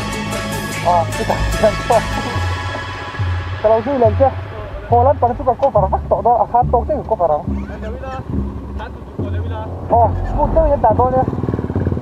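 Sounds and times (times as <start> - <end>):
background music: 0.0 - 12.0
low uneven rumble: 0.8 - 12.0
people talking: 0.9 - 2.4, 3.6 - 8.2, 8.8 - 11.3.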